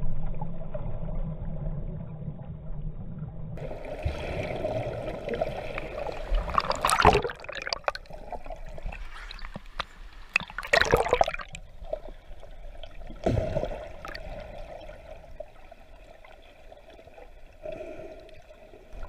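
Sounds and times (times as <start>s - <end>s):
sea water sloshing and splashing: 3.6s - 19.0s.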